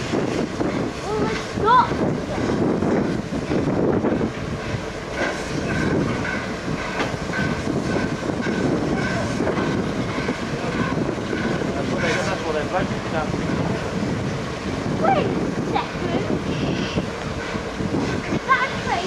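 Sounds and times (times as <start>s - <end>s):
steam locomotive rumbling: 0.0s - 19.0s.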